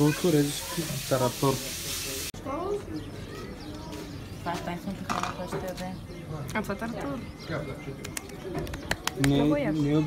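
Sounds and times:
faint indistinct talk: 0.1s - 10.0s.

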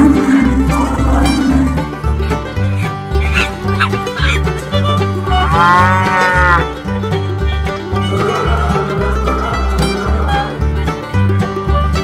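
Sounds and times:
cow mooing: 0.0s - 1.9s, 3.2s - 6.8s
banjo bluegrass music: 0.0s - 12.0s.

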